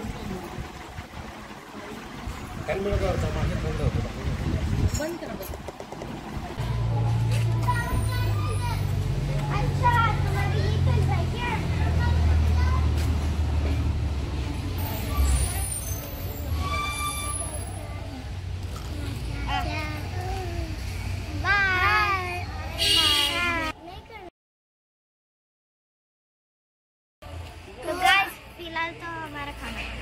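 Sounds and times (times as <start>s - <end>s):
vehicle engine droning: 0.0s - 21.8s
people talking: 1.6s - 5.6s, 7.4s - 13.2s.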